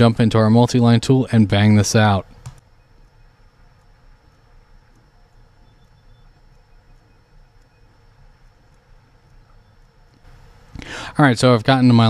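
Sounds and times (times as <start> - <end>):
low rumble and hiss: 0.0 - 12.0
computer mouse clicks: 2.3 - 10.3.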